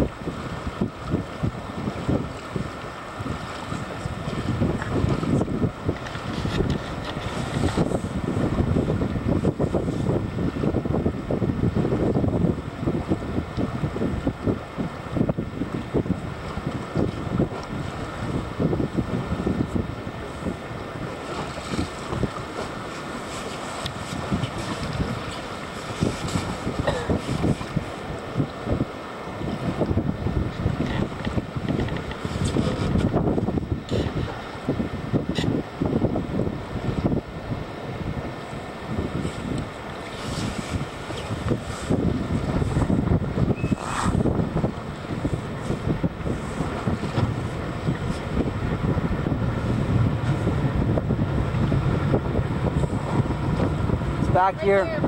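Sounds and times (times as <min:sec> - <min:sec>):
choppy sea water: 0:00.0 - 0:55.0
wind buffeting microphone: 0:00.0 - 0:55.0.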